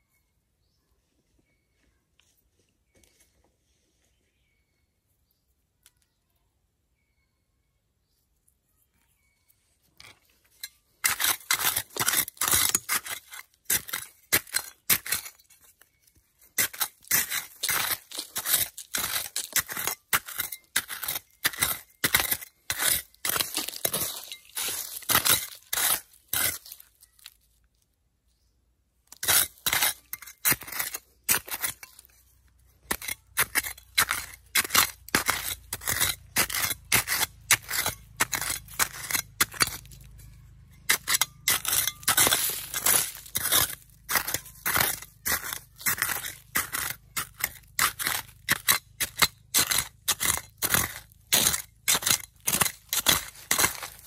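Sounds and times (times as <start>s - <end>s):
trowel scraping soil with stones: 9.8s - 27.5s, 29.1s - 54.0s.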